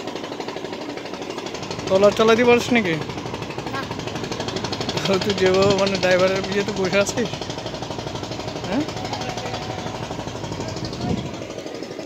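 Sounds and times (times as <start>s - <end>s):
boat diesel engine running: 0.0s - 12.0s.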